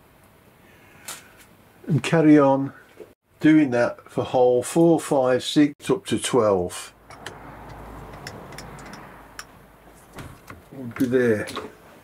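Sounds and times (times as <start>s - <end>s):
light clicks and knocks: 7.1s - 11.8s.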